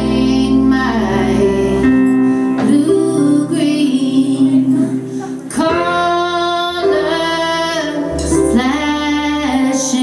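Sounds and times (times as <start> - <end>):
female voices singing held notes: 0.0 - 10.0
live band music: 0.0 - 10.0.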